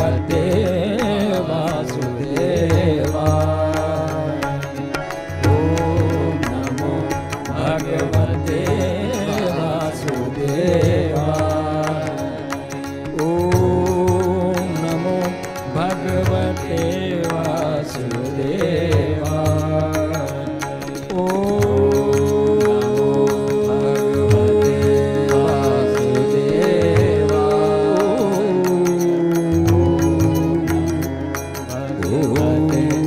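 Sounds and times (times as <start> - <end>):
person singing long held notes: 0.0 - 33.0.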